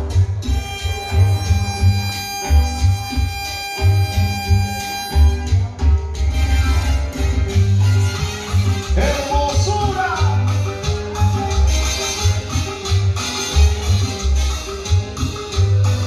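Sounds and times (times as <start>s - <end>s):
electronic keyboard bass line: 0.0s - 16.0s
live band instrumental music: 0.0s - 16.0s.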